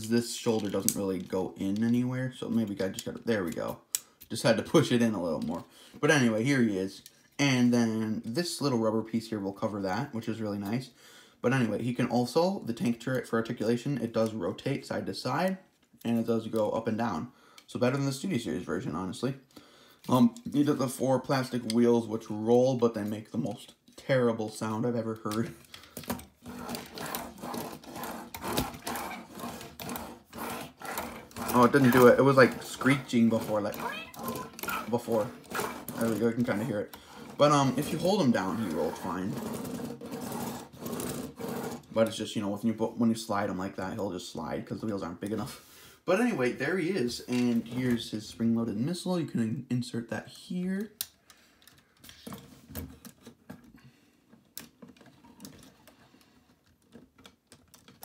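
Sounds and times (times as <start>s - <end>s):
plastic parts clicking and rubbing: 0.0s - 4.3s, 25.0s - 42.2s, 50.8s - 58.0s
toy wheels rolling on tabletop: 26.1s - 42.2s.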